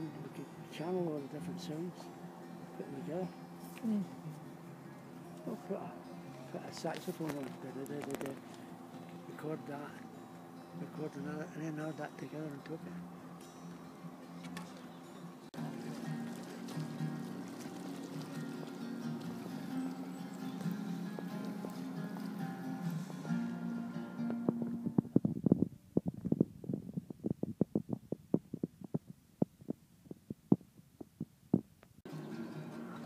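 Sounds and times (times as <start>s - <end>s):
acoustic guitar playing: 0.0s - 30.7s, 32.0s - 33.0s.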